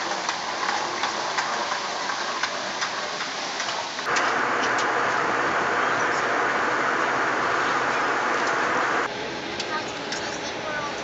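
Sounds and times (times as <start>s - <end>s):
moving walkway hiss: 0.0s - 11.0s.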